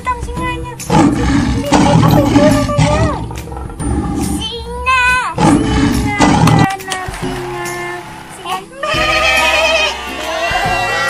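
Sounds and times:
lion roaring: 0:00.9 - 0:04.4, 0:05.4 - 0:06.7.

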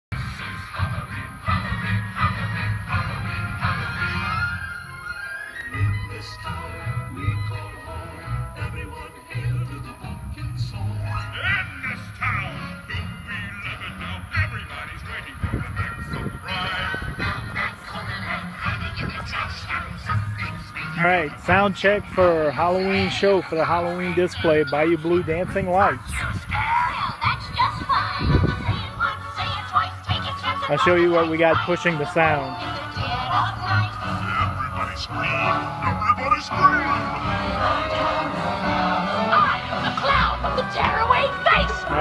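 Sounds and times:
music over outdoor speakers: 0:00.1 - 0:42.0
wavering melodic voices: 0:00.2 - 0:42.0.

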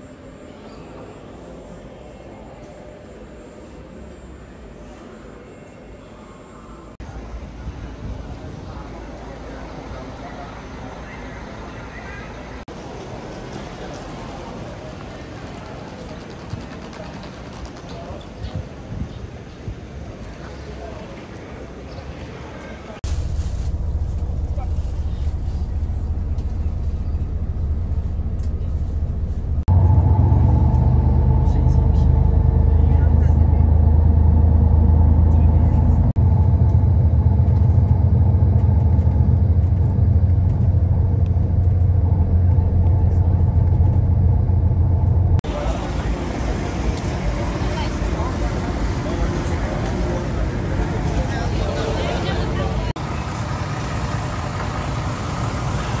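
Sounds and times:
voices: 0:00.0 - 0:23.0, 0:23.8 - 0:36.2, 0:45.4 - 0:56.0
bus engine and road rumble: 0:06.8 - 0:56.0.

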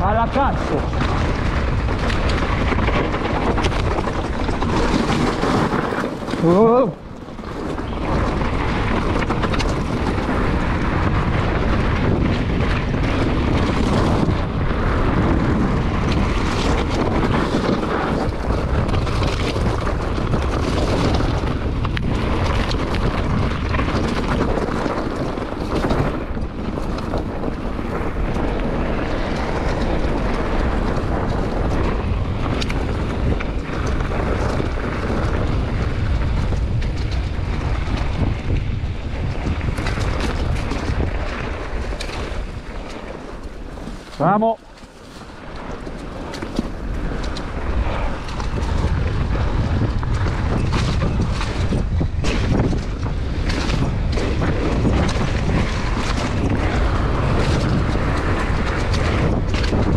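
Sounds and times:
bike knocking and rattling: 0:00.0 - 0:59.9
tyres rolling over gravel: 0:00.0 - 0:59.9
wind buffeting microphone: 0:00.0 - 0:59.9.

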